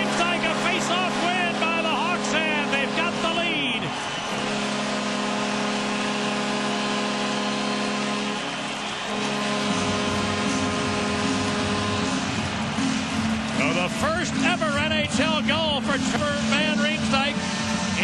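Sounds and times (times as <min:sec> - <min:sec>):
crowd cheering: 0:00.0 - 0:18.0
goal horn long steady note: 0:00.0 - 0:18.0.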